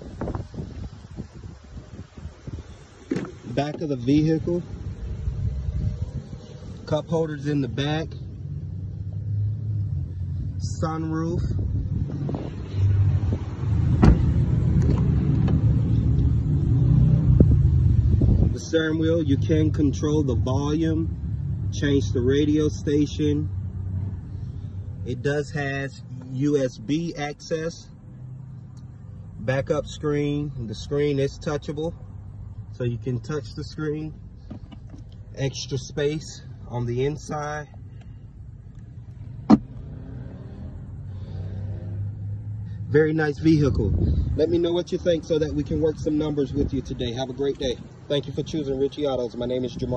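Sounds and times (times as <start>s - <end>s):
car engine idling: 0.0s - 16.4s, 17.4s - 40.0s.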